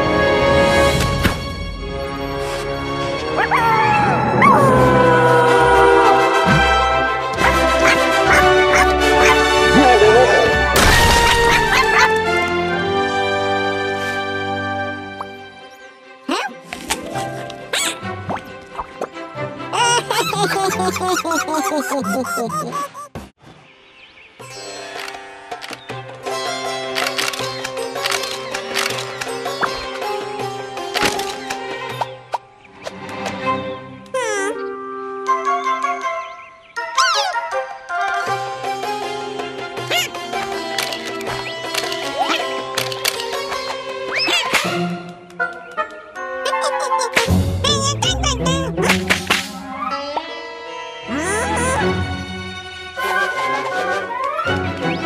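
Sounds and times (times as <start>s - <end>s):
cartoon background music: 0.0s - 23.3s, 24.4s - 55.0s
cartoon characters laughing: 7.4s - 10.4s, 11.1s - 12.4s, 19.7s - 23.2s, 39.8s - 40.2s, 46.3s - 50.4s, 51.1s - 51.9s
squeaky wordless vocalizing: 46.5s - 48.9s, 51.1s - 52.0s.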